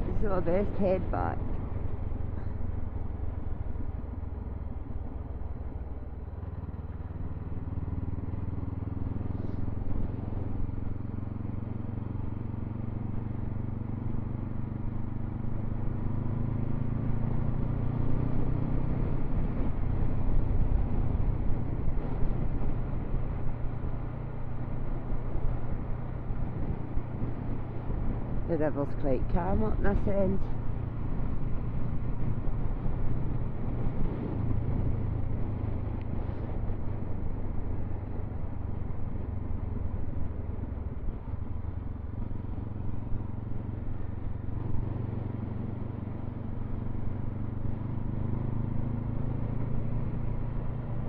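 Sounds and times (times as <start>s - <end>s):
motorcycle engine running: 0.0s - 51.0s.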